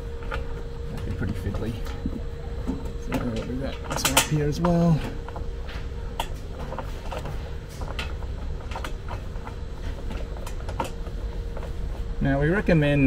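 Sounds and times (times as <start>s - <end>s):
faint steady hum: 0.0s - 13.0s
clicks and taps of metal parts: 3.1s - 5.4s.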